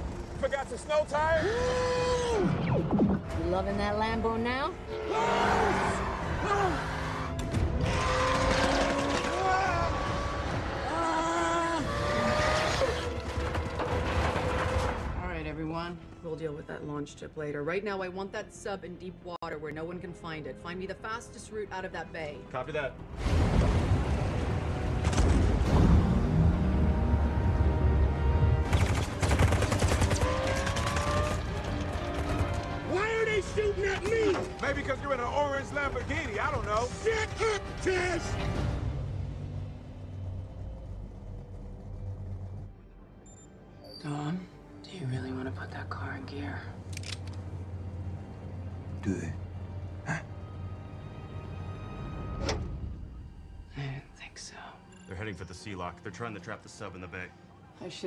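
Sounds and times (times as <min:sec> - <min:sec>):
dramatic score music: 0:00.0 - 0:58.0
machine-gun fire: 0:28.6 - 0:32.6.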